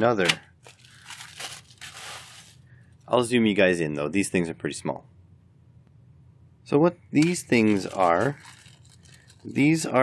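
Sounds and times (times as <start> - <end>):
plastic mailer crinkling: 0.6 - 2.6, 7.2 - 9.9.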